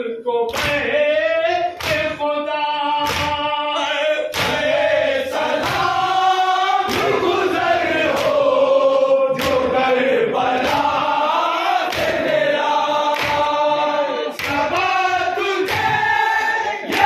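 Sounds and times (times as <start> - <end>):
men chanting in unison: 0.0 - 17.0.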